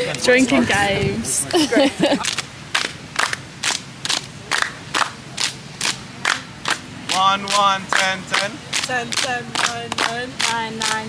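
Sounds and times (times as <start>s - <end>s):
group clapping in unison: 2.2s - 11.0s.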